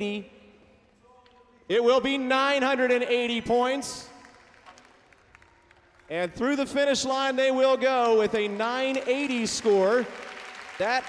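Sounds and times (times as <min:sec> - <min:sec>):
faint arena background hiss: 0:00.0 - 0:11.0
commentator speaking: 0:10.8 - 0:11.0.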